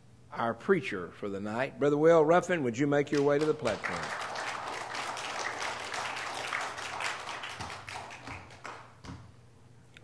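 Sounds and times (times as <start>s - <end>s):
crowd applauding: 3.2s - 9.1s.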